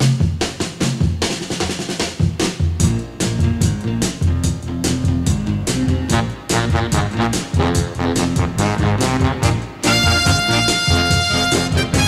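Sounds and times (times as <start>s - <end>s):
drum fill of snare and bass drum: 0.0s - 12.0s
low bass line: 2.8s - 12.0s.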